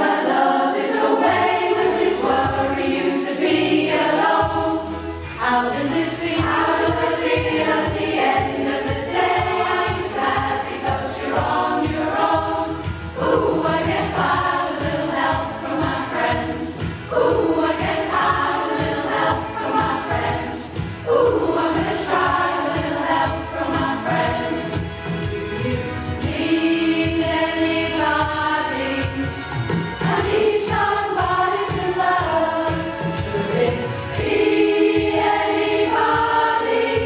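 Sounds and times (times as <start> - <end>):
choir singing pop-rock song: 0.0 - 37.0.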